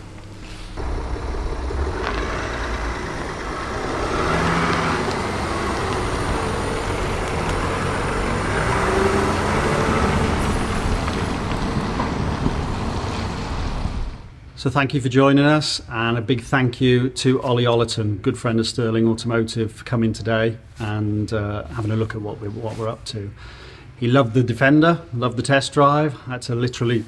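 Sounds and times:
vehicle engine rumble with hiss: 0:00.2 - 0:14.3.

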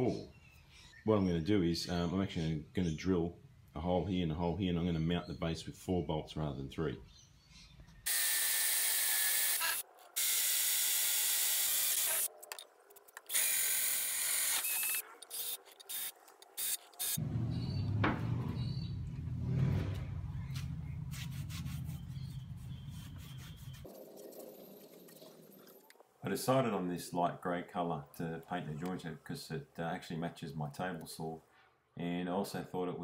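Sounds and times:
cordless drill boring into metal: 0:08.1 - 0:12.3, 0:13.3 - 0:17.2.

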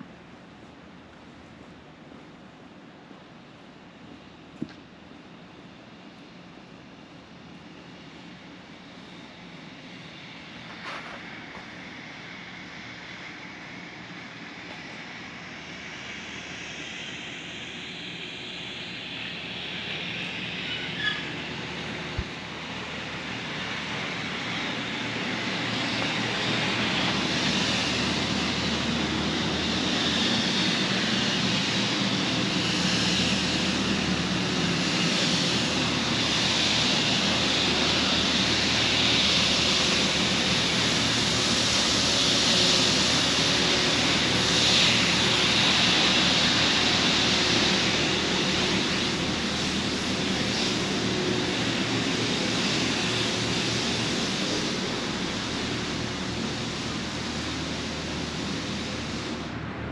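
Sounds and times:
street sweeper truck hiss and drone: 0:00.0 - 0:59.9.

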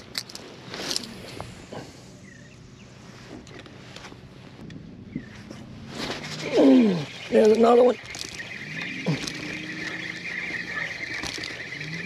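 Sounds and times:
faint chirps: 0:06.2 - 0:12.0.

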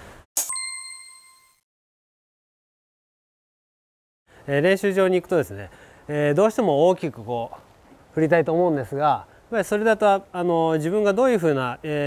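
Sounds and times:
bell-like ding: 0:00.4 - 0:01.6.

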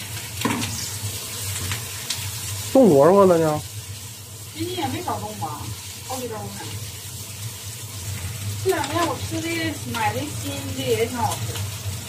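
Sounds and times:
food sizzling in a wok: 0:00.0 - 0:12.0.

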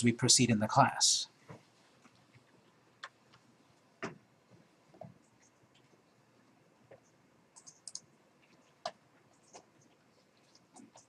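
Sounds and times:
computer mouse clicks: 0:06.9 - 0:11.0.

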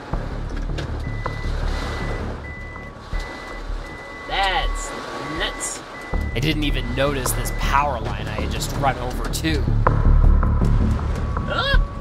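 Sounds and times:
truck rumbling over debris: 0:00.0 - 0:11.3
steady low tone: 0:00.0 - 0:12.0
electronic alert beeping: 0:01.0 - 0:08.6.

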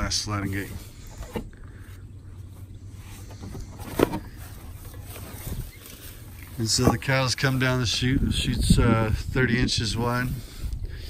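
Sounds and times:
handling rumble: 0:00.0 - 0:11.0
wind on microphone: 0:08.0 - 0:11.0.

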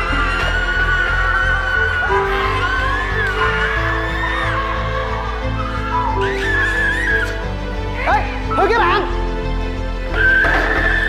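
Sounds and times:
high-pitched scream: 0:00.0 - 0:07.4
background music: 0:00.0 - 0:11.0.

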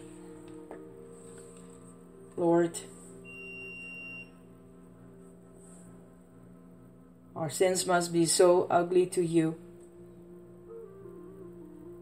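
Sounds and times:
low ambient drone: 0:00.0 - 0:12.0
thin high pure tone: 0:00.0 - 0:12.0.

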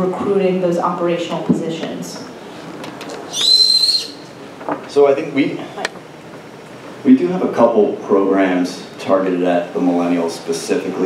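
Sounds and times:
high-pitched whistling tone: 0:03.3 - 0:04.3.

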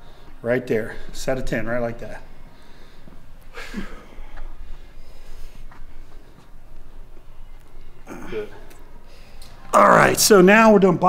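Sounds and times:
low room rumble: 0:00.0 - 0:10.4.

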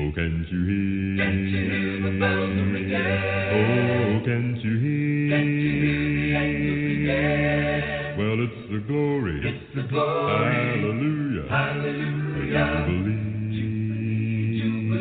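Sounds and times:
person singing a cappella: 0:00.0 - 0:15.0.

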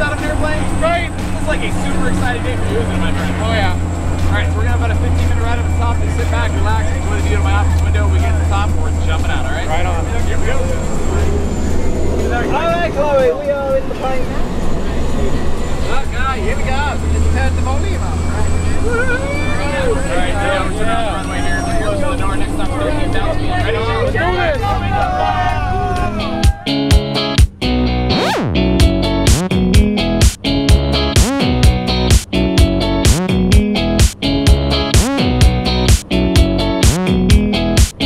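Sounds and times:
voices: 0:00.0 - 0:26.8
music with sharp regular beats: 0:26.2 - 0:38.0.

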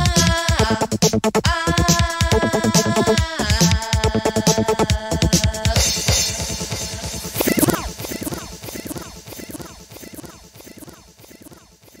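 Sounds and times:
electronic dance music: 0:00.0 - 0:12.0
repeating falling sweep: 0:07.3 - 0:11.6.

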